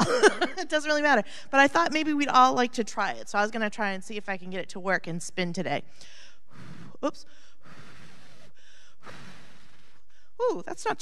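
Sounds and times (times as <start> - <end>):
breath blowing into microphone: 6.1 - 10.4.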